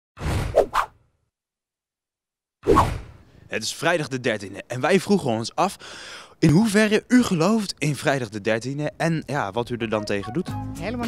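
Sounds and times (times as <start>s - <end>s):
quick swishes: 0.4s - 1.0s, 2.6s - 3.2s.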